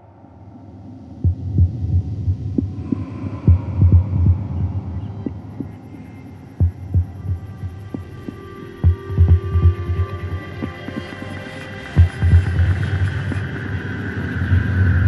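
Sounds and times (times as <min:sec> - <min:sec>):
soft sustained drone: 0:00.0 - 0:15.0
low heartbeat-like thumps: 0:01.2 - 0:11.1, 0:12.0 - 0:13.4.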